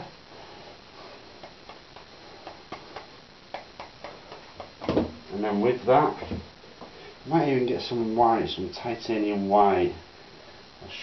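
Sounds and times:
brush clicks and taps on palette: 1.4s - 5.0s.

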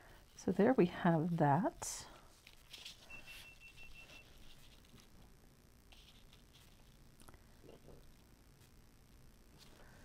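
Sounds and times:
stencil brush scratching paper: 2.2s - 5.2s, 5.9s - 7.0s.

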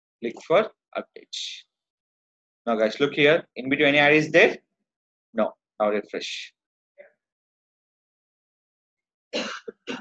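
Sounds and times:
person coughing: 9.4s - 10.0s.

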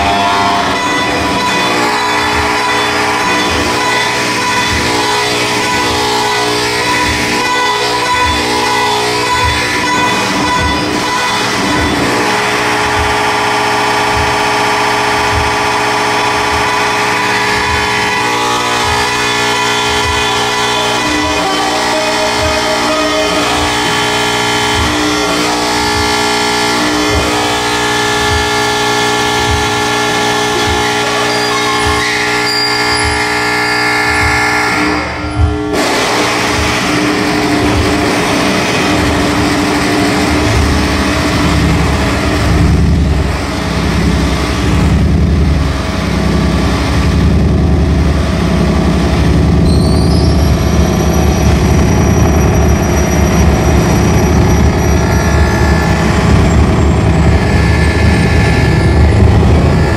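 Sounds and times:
high gliding tone: 0.0s - 43.3s
layered electronic drone: 0.0s - 59.9s
pulsing low rumble: 0.0s - 59.9s
repeating low pulse: 0.0s - 59.9s.

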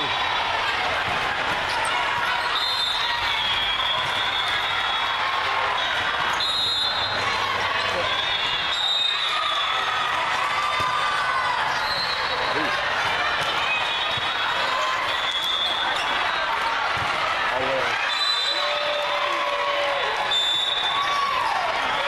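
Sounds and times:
hubbub of voices: 0.0s - 22.0s.

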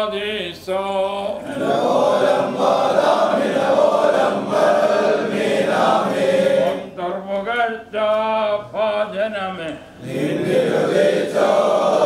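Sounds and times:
men chanting a hymn: 0.0s - 12.0s.

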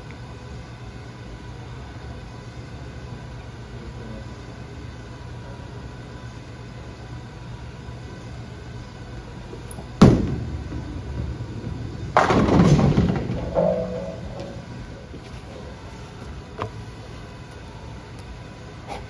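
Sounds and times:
bowling alley hum: 0.0s - 19.0s
bowling pins crashing: 10.0s - 14.9s
bowling ball thud and rolling: 10.0s - 15.1s.

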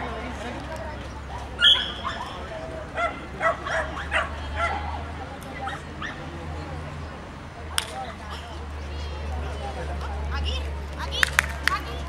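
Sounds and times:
dog yipping: 1.6s - 2.3s.

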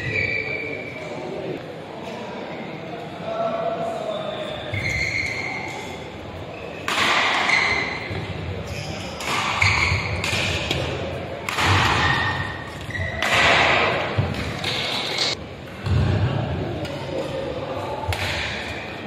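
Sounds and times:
court shoes squeaking: 0.0s - 1.3s, 4.3s - 16.0s.

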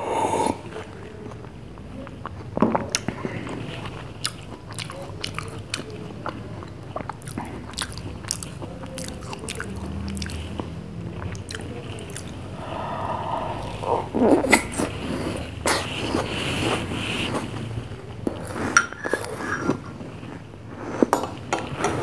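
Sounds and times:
mouth clicks and smacks eating: 0.6s - 12.6s.

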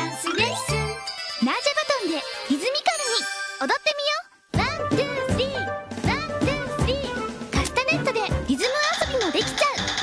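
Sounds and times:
children's music with a beat: 0.0s - 3.8s, 4.5s - 10.0s
tinkling chime effects: 0.0s - 3.9s.

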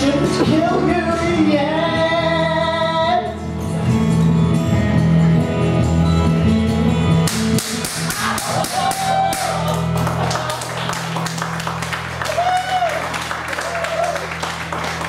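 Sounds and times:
audience clapping: 7.3s - 15.0s.

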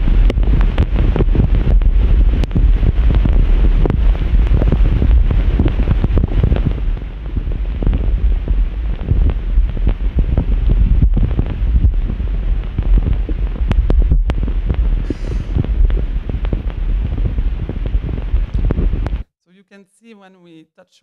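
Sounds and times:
loud dense low noise with crackles: 0.0s - 19.2s.

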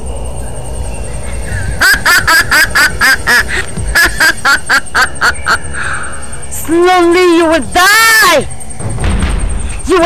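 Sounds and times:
woman cackling laugh: 1.7s - 5.7s.

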